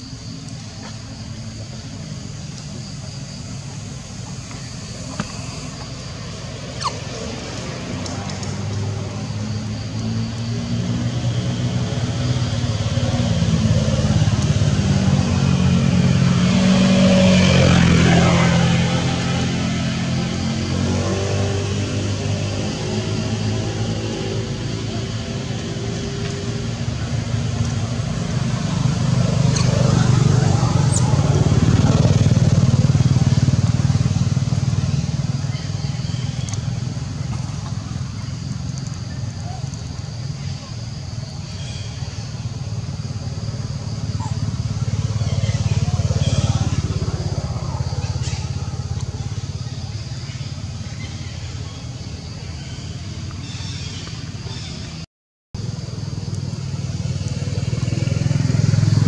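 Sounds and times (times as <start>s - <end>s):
motor engine running: 21.3s - 52.8s.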